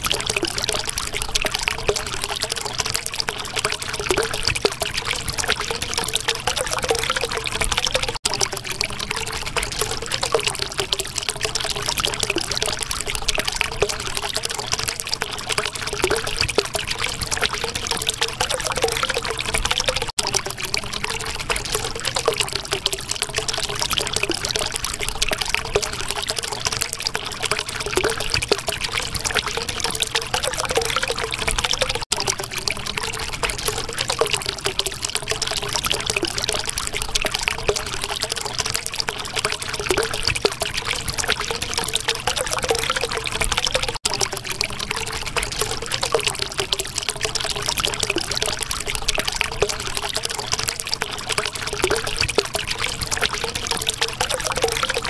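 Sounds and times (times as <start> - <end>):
running water splashing: 0.0 - 55.0.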